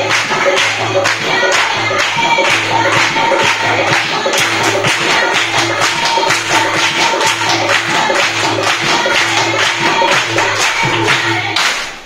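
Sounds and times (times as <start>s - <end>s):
drum strokes: 0.0s - 11.5s
handclaps: 0.0s - 12.0s.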